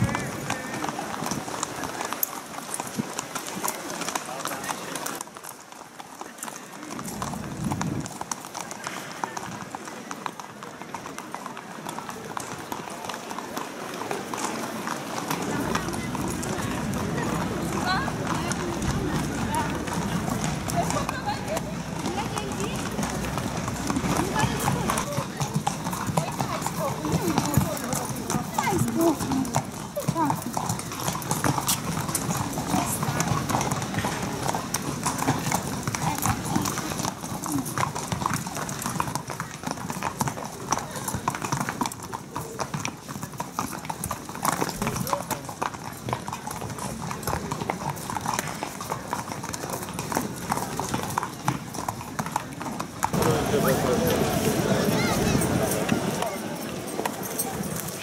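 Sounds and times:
people talking: 0.0 - 2.5, 3.4 - 5.2, 6.2 - 43.4, 53.0 - 58.0
hooves clip-clopping on pavement: 0.0 - 58.0.

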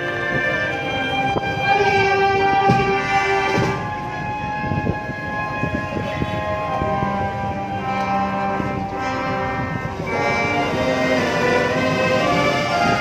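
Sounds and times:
brass band sustained chords: 0.0 - 13.0
drum hits: 2.6 - 4.0.

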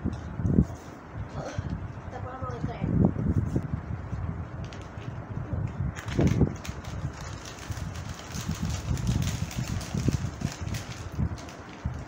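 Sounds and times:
snack packets crinkling: 6.0 - 12.0.

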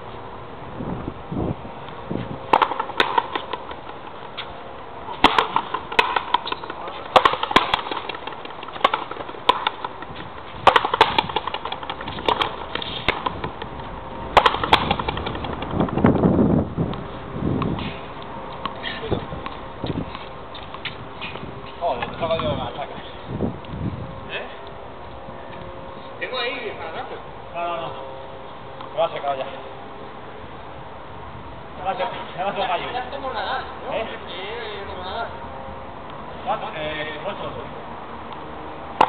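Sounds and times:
ball cracking off racket and wall: 2.5 - 4.5, 5.1 - 13.7, 14.3 - 16.2.

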